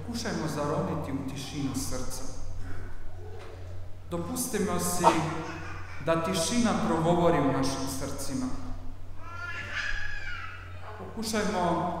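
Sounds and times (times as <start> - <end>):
high-pitched wavering cry: 9.2 - 10.9.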